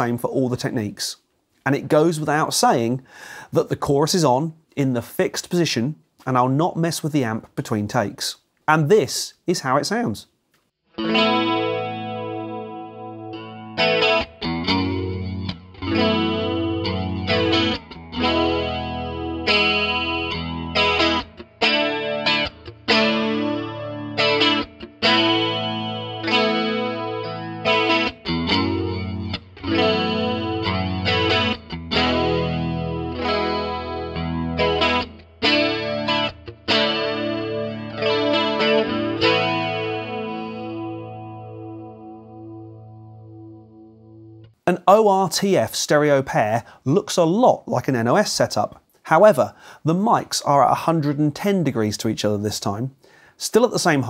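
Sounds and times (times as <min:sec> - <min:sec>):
electric guitar strumming chords: 0:10.9 - 0:44.6.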